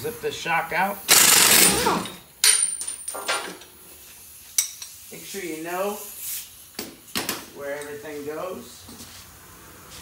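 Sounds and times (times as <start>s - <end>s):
impact wrench hammering: 1.1s - 2.9s.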